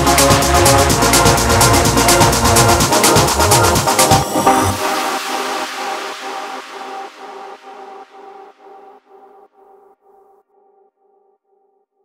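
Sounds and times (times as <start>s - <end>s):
pulsing synth chord: 0.0s - 8.6s.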